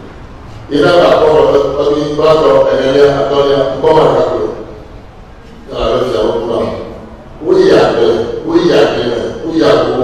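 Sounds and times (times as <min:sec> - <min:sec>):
man speaking into a microphone: 0:00.6 - 0:04.9, 0:05.5 - 0:10.0.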